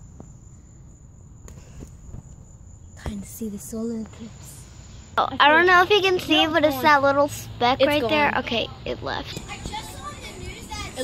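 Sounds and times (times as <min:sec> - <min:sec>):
insect chirring: 0:00.0 - 0:06.7.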